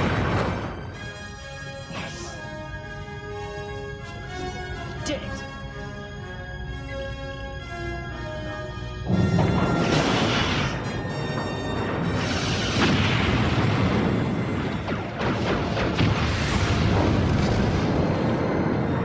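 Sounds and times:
explosion booms: 0.0s - 0.8s, 9.1s - 19.0s.

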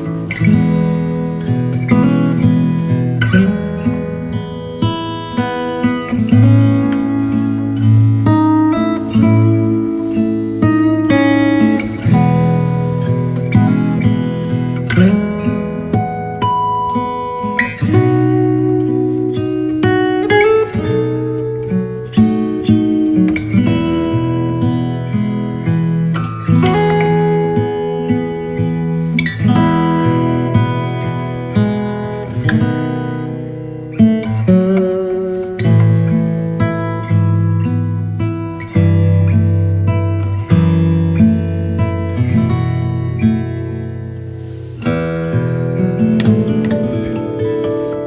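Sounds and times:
acoustic guitar plucking and strumming: 0.0s - 48.0s.

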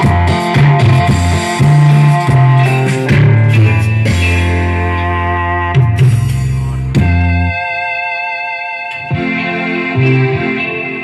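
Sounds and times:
bass line: 0.0s - 11.0s
electric guitar: 0.0s - 11.0s
keyboard: 0.0s - 11.0s
live band playing: 0.0s - 11.0s.

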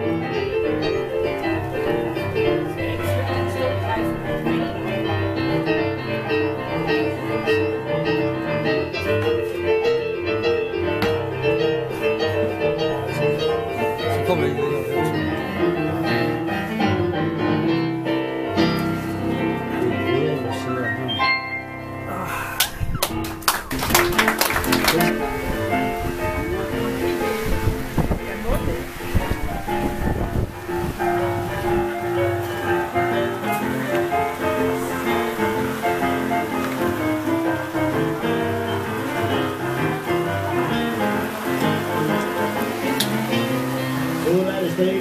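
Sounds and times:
boogie-woogie piano playing: 0.0s - 45.0s.

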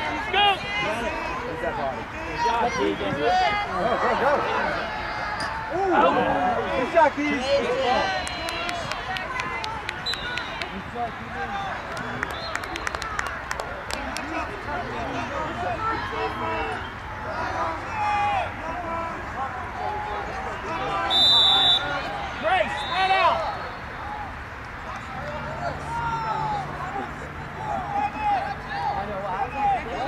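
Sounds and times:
people shouting and calling: 0.0s - 12.3s, 13.3s - 30.0s.

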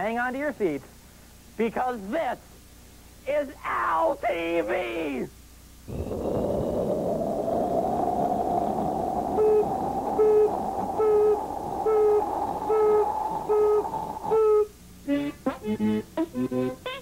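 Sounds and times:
rocket roar rising in pitch: 5.9s - 14.5s.

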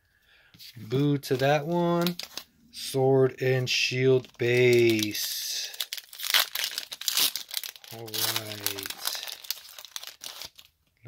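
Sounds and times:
foil wrapper crinkling and tearing: 1.3s - 2.4s, 4.2s - 10.7s.

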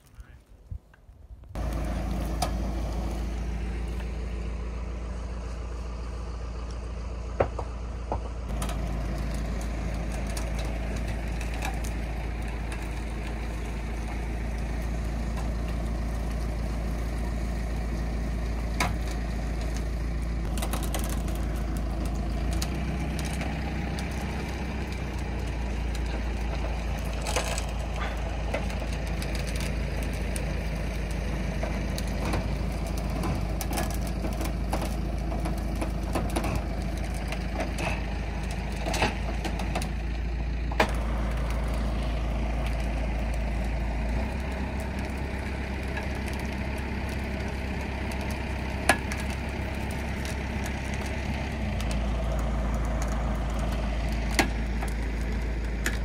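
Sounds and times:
tractor engine idling: 0.0s - 56.0s
twigs snapping underfoot: 18.8s - 56.0s.

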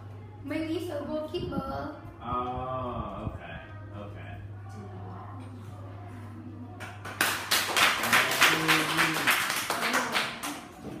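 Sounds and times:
people clapping in applause: 6.8s - 11.0s.

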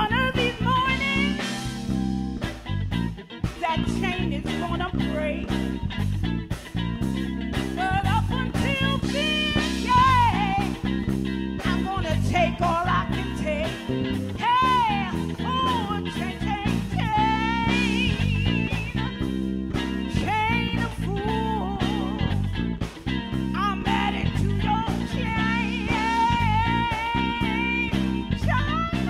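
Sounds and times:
electric bass: 0.0s - 29.0s
guitar: 0.0s - 29.0s
steady drum beat: 0.0s - 29.0s.

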